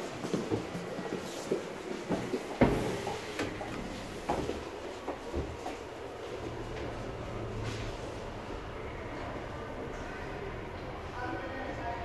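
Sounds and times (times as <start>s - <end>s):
footsteps clicking in elevator: 0.0s - 7.1s.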